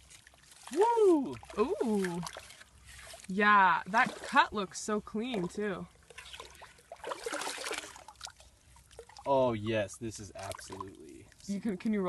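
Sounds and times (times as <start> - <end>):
wet clay being scooped: 0.0 - 4.4
water splashing and trickling: 0.0 - 12.0
small wet clicks: 5.2 - 9.3.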